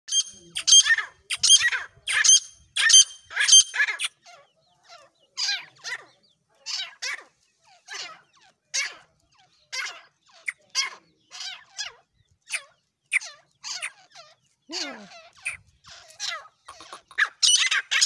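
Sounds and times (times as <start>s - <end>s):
francolins calling: 0.1s - 18.0s.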